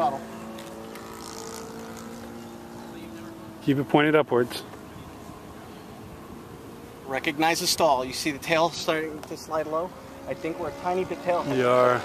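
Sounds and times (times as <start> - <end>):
model airplane engine droning: 0.0 - 12.0.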